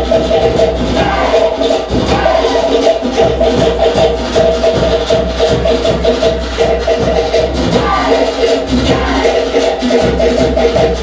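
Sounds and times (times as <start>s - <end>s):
fast drum percussion: 0.0s - 11.0s.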